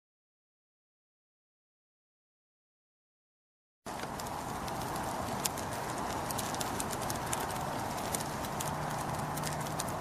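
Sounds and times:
fire hissing and crackling: 0:03.9 - 0:10.0.

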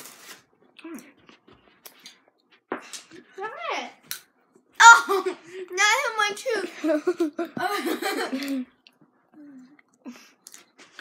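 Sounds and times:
girl loud exclamation: 0:04.8 - 0:05.3.

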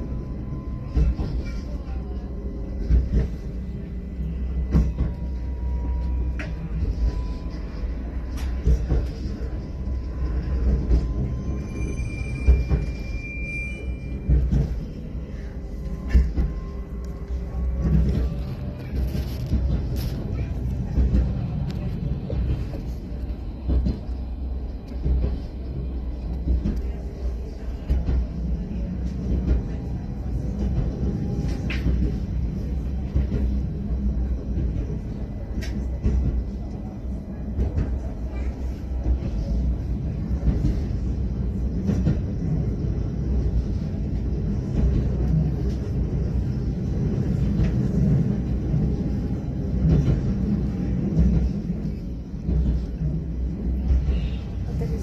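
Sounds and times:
moving vehicle rumble: 0:06.2 - 0:55.0.

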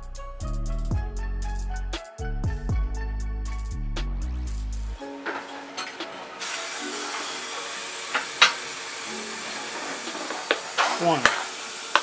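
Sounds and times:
dental equipment hissing: 0:06.3 - 0:12.0.

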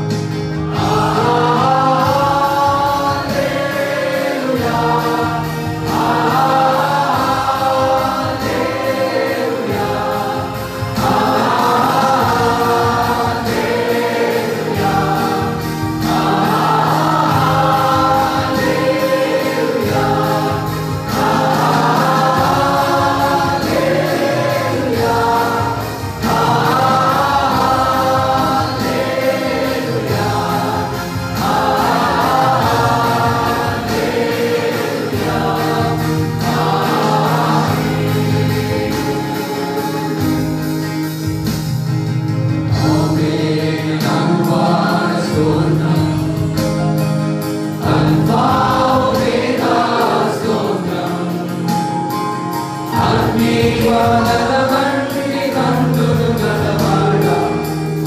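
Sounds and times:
acoustic guitar: 0:00.0 - 0:58.0
mixed choir singing a hymn: 0:00.0 - 0:58.0.

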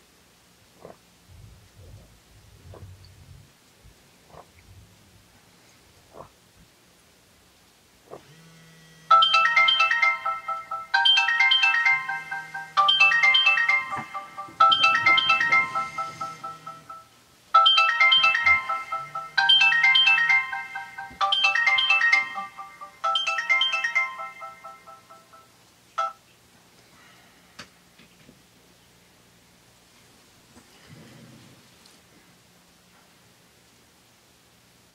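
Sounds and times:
low buzz: 0:08.1 - 0:09.2
phone alarm chiming melody: 0:09.1 - 0:26.2.

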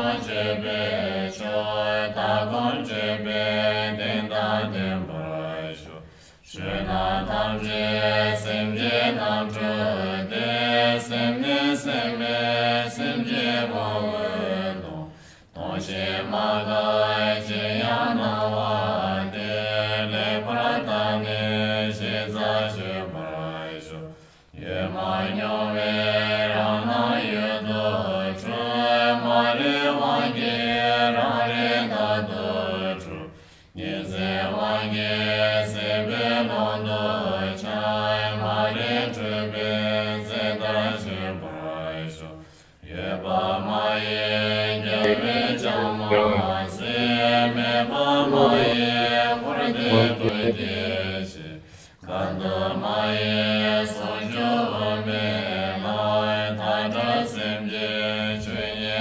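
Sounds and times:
person chanting prayers: 0:00.0 - 0:59.0.

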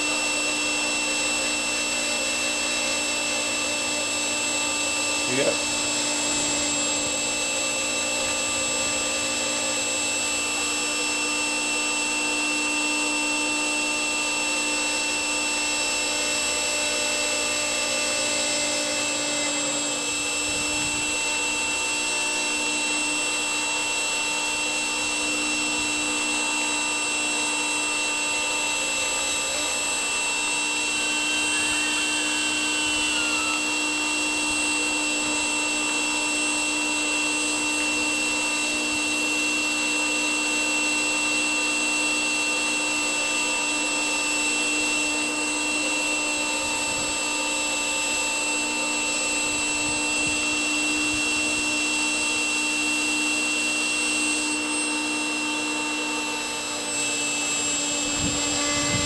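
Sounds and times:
blower motor whirring hum: 0:00.0 - 0:59.0.

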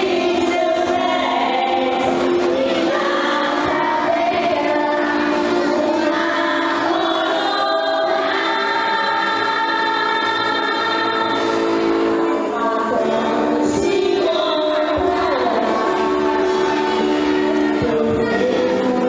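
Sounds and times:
choir singing a slow hymn: 0:00.0 - 0:19.0.

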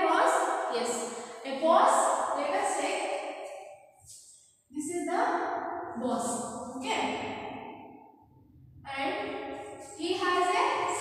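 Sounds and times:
woman speaking: 0:00.0 - 0:03.0, 0:04.8 - 0:07.3, 0:08.8 - 0:11.0.

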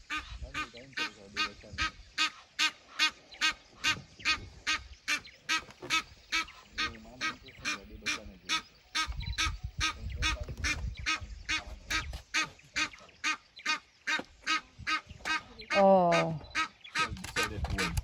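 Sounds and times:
duck calling: 0:00.0 - 0:18.0.

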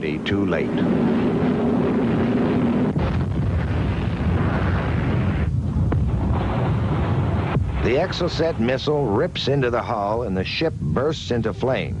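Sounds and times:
missile impact roar: 0:00.4 - 0:10.2.

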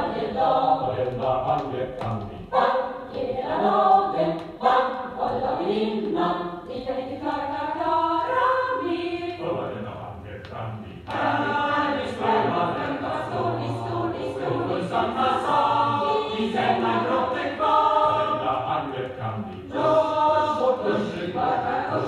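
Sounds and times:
choir singing from vinyl: 0:00.0 - 0:22.0.

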